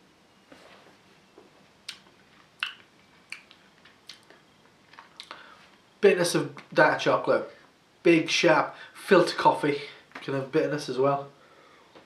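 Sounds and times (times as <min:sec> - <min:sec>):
lip and tongue smacks: 0:01.8 - 0:05.4.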